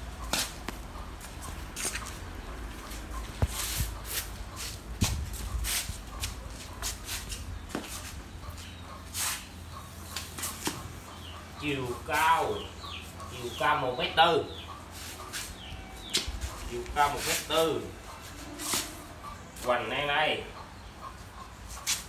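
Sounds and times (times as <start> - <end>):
rustling and shuffling: 0.1 - 9.5.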